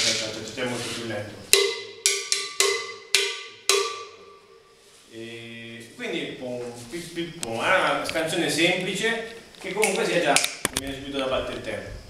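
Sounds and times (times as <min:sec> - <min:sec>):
cowbell struck: 0:01.5 - 0:04.6.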